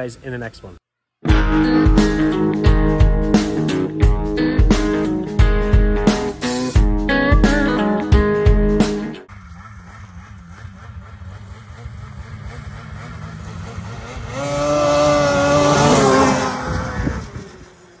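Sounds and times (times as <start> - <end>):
snowmobile passing by: 9.3 - 18.0.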